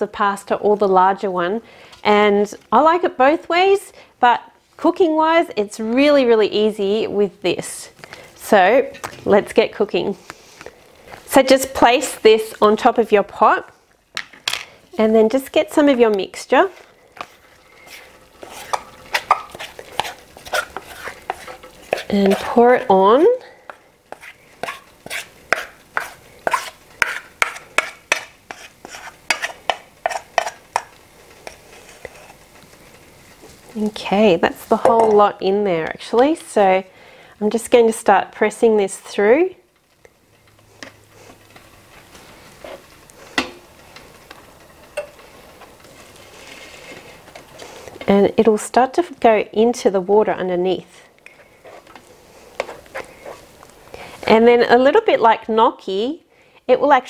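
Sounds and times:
spatula scraping batter from bowl: 17.2 - 23.0, 23.7 - 32.4.

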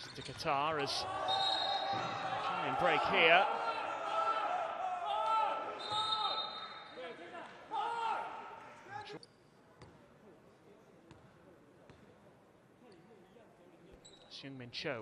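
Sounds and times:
voices calling out in hall: 0.0 - 9.2.

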